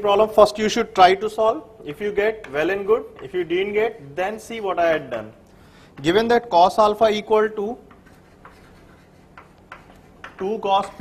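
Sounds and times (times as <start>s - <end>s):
chalk scratching on chalkboard: 7.6s - 11.0s.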